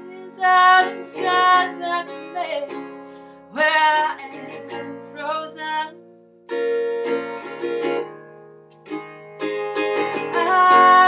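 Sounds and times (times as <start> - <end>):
ukulele strumming chords: 0.0 - 11.0.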